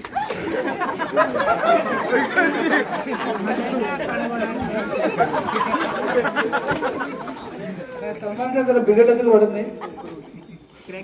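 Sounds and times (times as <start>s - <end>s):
crowd of men chattering: 0.0s - 11.0s.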